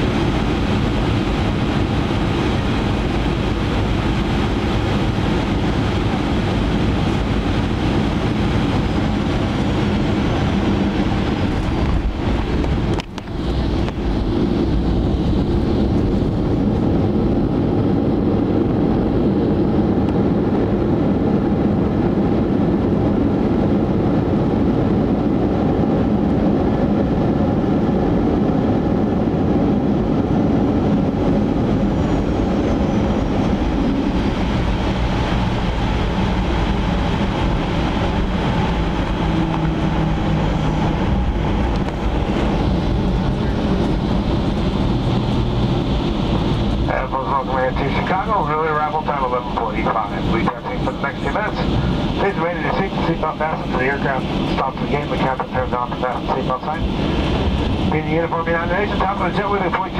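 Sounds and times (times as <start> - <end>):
jet engines and wheels rumbling: 0.0 - 59.9.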